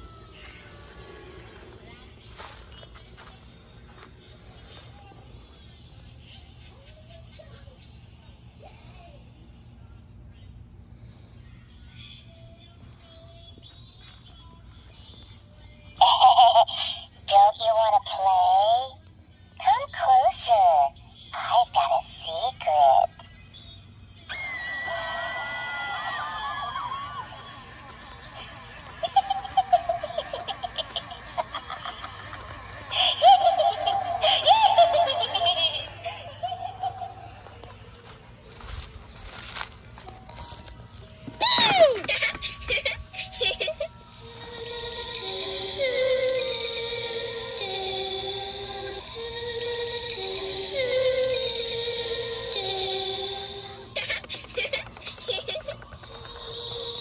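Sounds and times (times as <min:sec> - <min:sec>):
high-pitched child-like giggling: 0:16.0 - 0:17.1, 0:28.3 - 0:37.7, 0:41.4 - 0:44.1, 0:53.7 - 0:56.3
eerie music: 0:24.3 - 0:55.0
eerie voice: 0:32.7 - 0:37.6.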